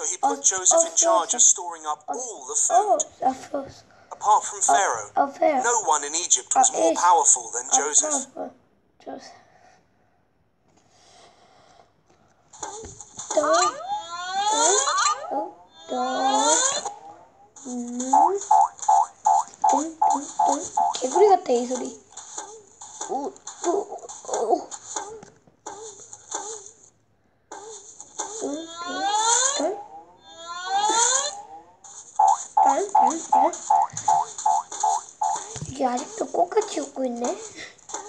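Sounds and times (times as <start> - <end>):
high squeaky voice squealing: 12.6 - 17.0, 22.3 - 26.9, 27.5 - 31.6.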